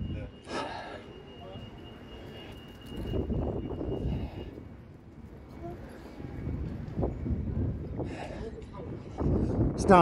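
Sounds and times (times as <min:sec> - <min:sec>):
faint steady high tone: 0:00.0 - 0:04.7.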